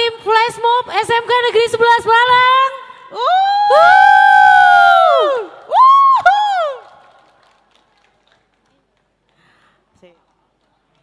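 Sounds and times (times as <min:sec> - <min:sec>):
high voices whooping: 0:03.2 - 0:07.1.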